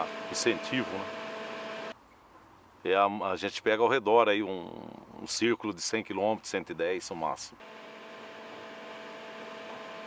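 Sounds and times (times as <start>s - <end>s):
sawmill machinery humming: 0.0s - 2.0s, 7.6s - 10.0s.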